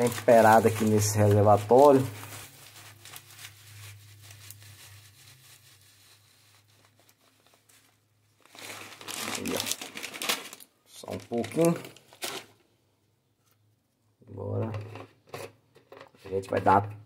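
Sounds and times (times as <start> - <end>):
salt grains crackling: 0.0 - 7.8, 8.5 - 11.9
plastic bag crinkling: 0.0 - 12.6.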